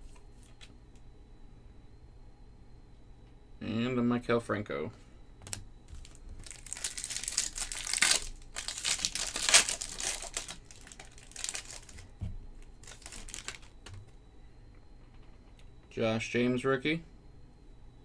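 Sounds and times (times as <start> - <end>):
foil wrapper crinkling and tearing: 5.4 - 14.0
cards rustling: 5.4 - 14.2.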